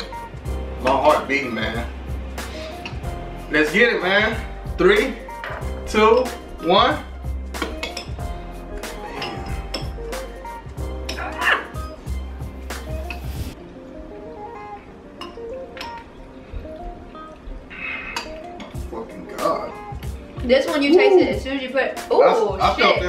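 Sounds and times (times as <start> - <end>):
background music: 0.0 - 23.0
forks clinking against ceramic bowls: 7.6 - 8.2, 9.1 - 10.0.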